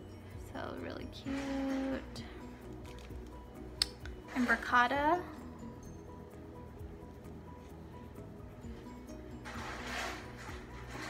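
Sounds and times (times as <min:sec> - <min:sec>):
soft background music: 0:00.0 - 0:11.0
paper rustling: 0:02.8 - 0:03.4.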